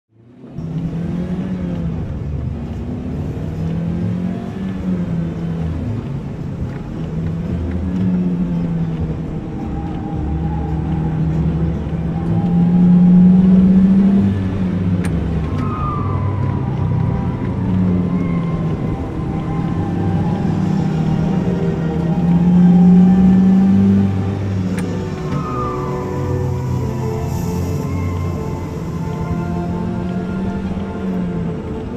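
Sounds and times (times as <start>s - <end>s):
ride vehicle rolling on track: 0.2s - 31.9s.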